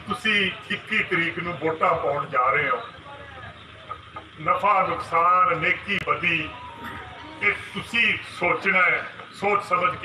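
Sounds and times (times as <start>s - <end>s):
man speaking: 4.4s - 10.0s.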